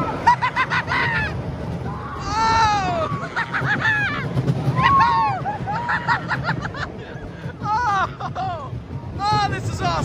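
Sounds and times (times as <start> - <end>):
riders screaming and laughing: 0.0 - 9.3
coaster train rumbling on track: 0.0 - 10.0.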